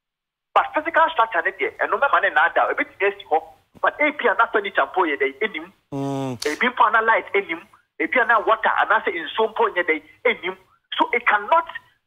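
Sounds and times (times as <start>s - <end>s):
voice over a telephone line: 6.0s - 6.6s.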